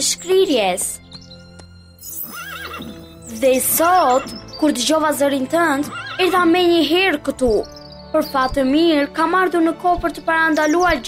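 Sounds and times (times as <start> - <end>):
soft background music: 0.0 - 11.0
cartoon horse whinny: 2.2 - 3.0, 5.9 - 6.3.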